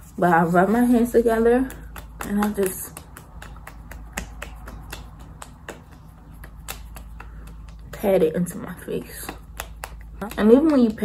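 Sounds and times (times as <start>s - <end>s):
hands patting face: 0.7s - 11.0s.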